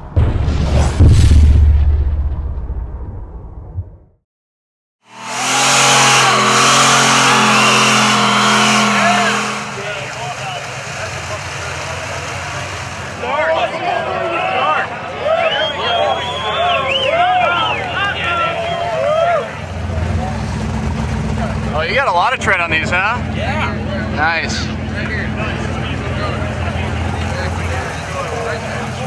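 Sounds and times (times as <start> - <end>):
car engine revving: 5.1 - 13.2, 17.8 - 29.0
low engine drone: 5.1 - 13.2
spinning tyres hissing: 5.1 - 13.4
onlookers shouting and cheering: 5.1 - 22.3, 23.2 - 29.0.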